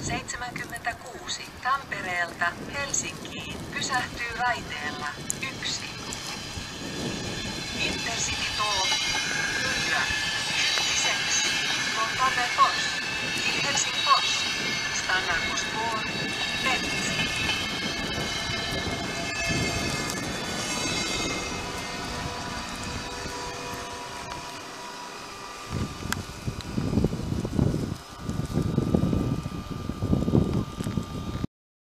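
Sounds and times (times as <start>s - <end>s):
low rumbling gusts: 0.0s - 31.5s
train wheels and brakes squealing: 3.6s - 31.3s.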